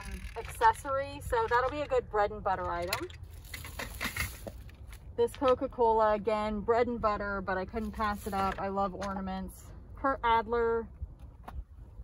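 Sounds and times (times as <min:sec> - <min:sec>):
rustling of items being handled: 0:00.0 - 0:05.7, 0:07.7 - 0:09.3.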